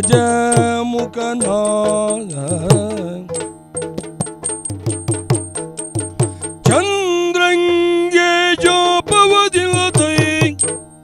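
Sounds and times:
person singing: 0.0s - 3.4s, 6.3s - 10.7s
hand drum quick strokes: 0.0s - 7.0s
drum struck with sticks: 0.0s - 11.0s.

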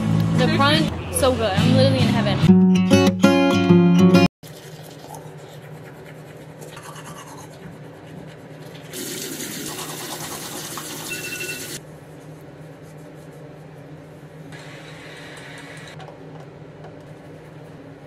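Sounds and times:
toothbrush scrubbing teeth: 4.4s - 11.0s.

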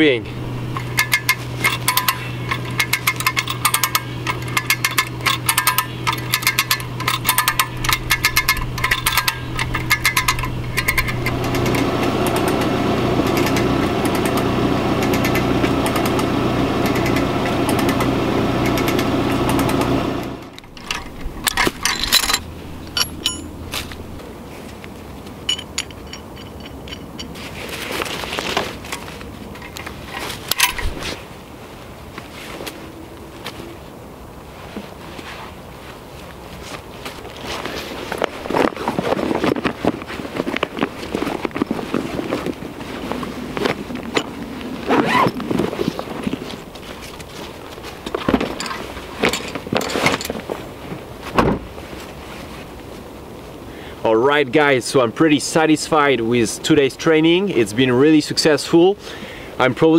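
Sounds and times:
continuous rattle: 0.0s - 31.2s, 37.4s - 51.8s
steady low hum: 0.0s - 35.0s
metal shackle clinking: 0.4s - 31.2s, 40.4s - 50.7s
hand winch ratchet clicking: 0.7s - 24.2s, 29.6s - 31.0s.

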